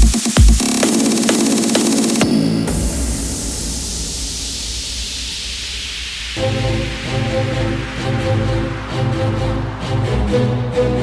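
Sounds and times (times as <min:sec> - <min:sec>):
white-noise sweep: 0:00.0 - 0:11.0
steady low sub-bass: 0:02.6 - 0:11.0.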